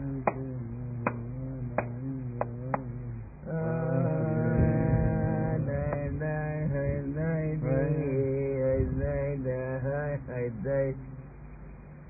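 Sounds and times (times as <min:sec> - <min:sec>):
man chanting a melody: 0:00.0 - 0:11.4
steady low hum: 0:00.0 - 0:12.0.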